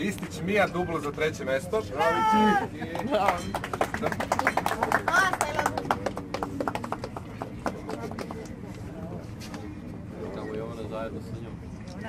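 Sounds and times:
people applauding: 2.2 - 8.6.

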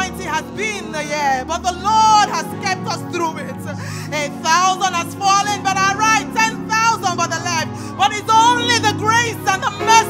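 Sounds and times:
woman singing amplified: 0.0 - 10.0.

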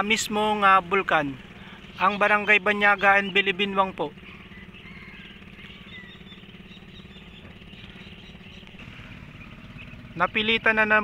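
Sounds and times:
birds chirping: 0.0 - 11.0
low background rumble: 0.0 - 11.0.

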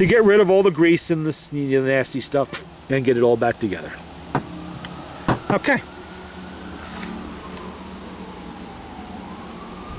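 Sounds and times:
steady background noise: 0.0 - 9.9
distant siren wailing: 2.2 - 9.9.

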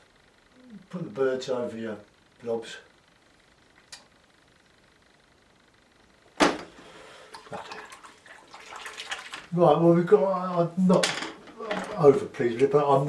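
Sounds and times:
faint click: 3.8 - 4.1
brush swishing in water: 7.4 - 9.5.

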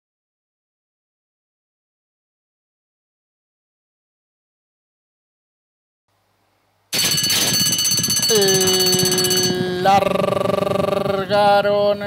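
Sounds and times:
electric bell ringing: 6.9 - 10.0
long held pitched tone: 7.0 - 11.4.

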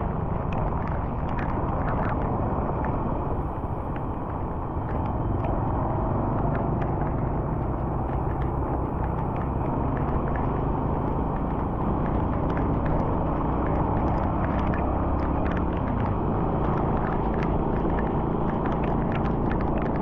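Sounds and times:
road noise on wet highway: 0.0 - 20.0
faint ticks: 0.4 - 5.6, 6.4 - 20.0.

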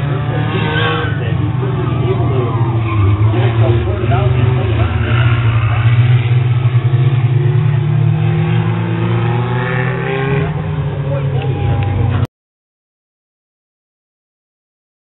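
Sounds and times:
people talking: 0.0 - 7.9, 9.6 - 12.3
race car engines running: 0.0 - 12.3.

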